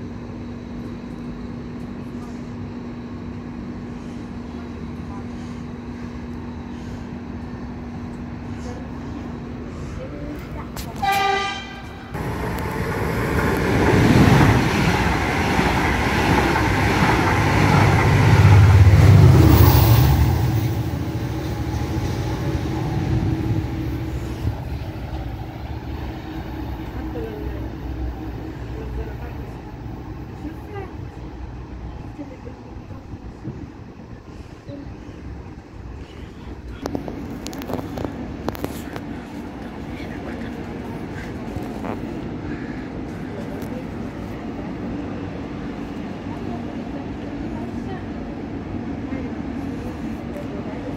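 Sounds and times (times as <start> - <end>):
train wheels rumbling on rails: 0.0 - 50.9
train horn blast: 11.0 - 12.2.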